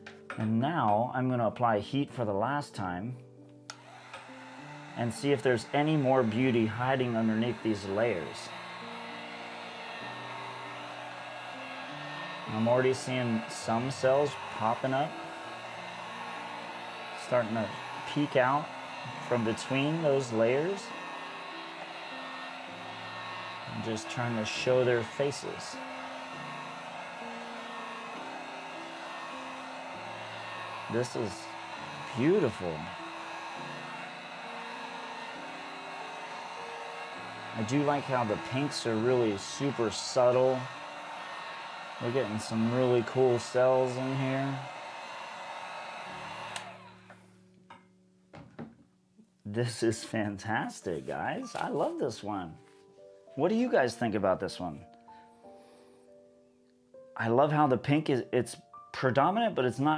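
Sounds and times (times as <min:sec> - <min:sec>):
heat gun switch click: 0:03.7 - 0:04.3
heat gun fan blowing: 0:03.7 - 0:47.2.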